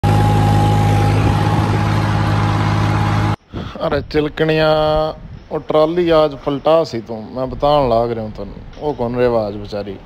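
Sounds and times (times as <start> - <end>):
tractor diesel engine running: 0.0 - 3.4.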